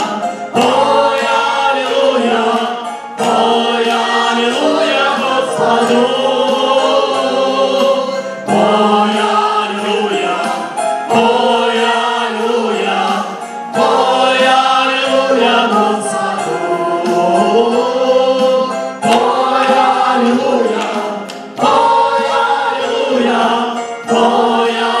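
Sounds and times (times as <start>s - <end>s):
electronic keyboard: 0.0s - 25.0s
voices singing worship song: 0.0s - 25.0s.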